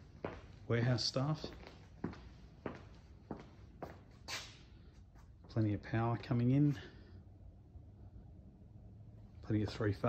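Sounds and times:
footsteps on concrete floor: 0.0s - 6.9s.

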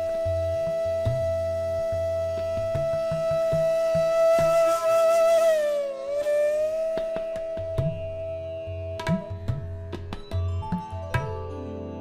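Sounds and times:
bamboo flute long note: 0.0s - 9.3s
tabla strokes: 0.0s - 11.5s.

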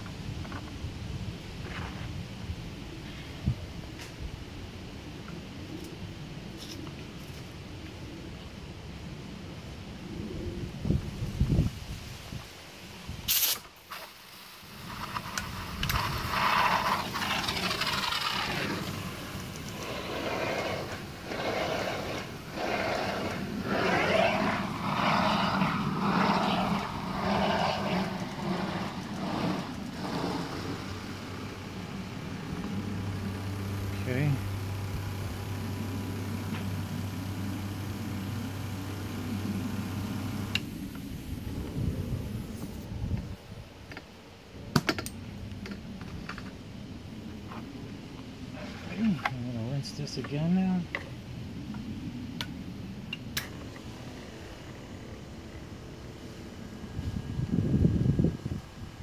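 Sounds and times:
foam generator hissing and sputtering: 13.5s - 42.7s, 53.3s - 59.0s
low steady hum: 14.8s - 43.6s.

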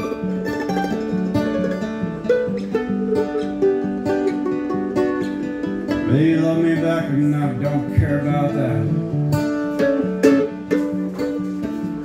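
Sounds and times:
acoustic guitar: 0.0s - 12.0s
mandolin picking: 0.0s - 12.0s.

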